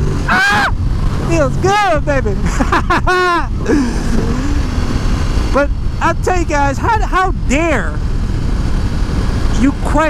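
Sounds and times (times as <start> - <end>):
motorcycle engine at speed: 0.0 - 10.0.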